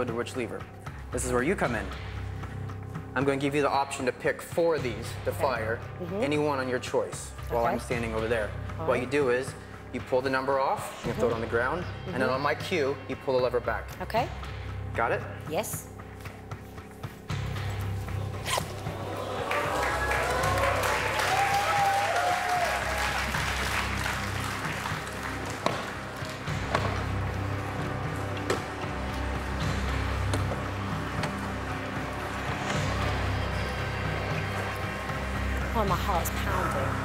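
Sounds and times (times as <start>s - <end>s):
tense music with bass drone: 0.0s - 37.0s.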